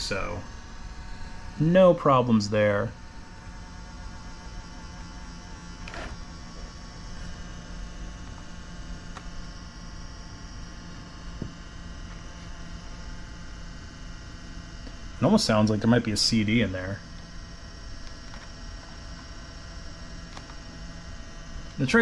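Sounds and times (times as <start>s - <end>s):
laptop drive whirring: 0.0s - 22.0s.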